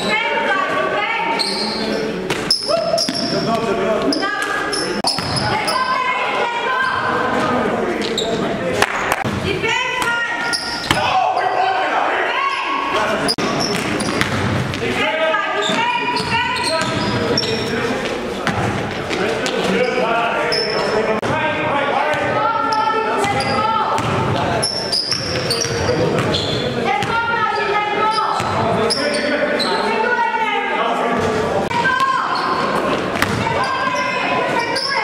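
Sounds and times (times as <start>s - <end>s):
players calling out: 0.0s - 35.0s
sneakers squeaking: 1.2s - 11.8s, 12.4s - 21.1s, 22.1s - 30.1s, 31.2s - 35.0s
basketball bouncing: 5.0s - 5.6s, 13.7s - 14.8s, 23.2s - 24.5s, 25.1s - 26.4s, 33.1s - 33.6s.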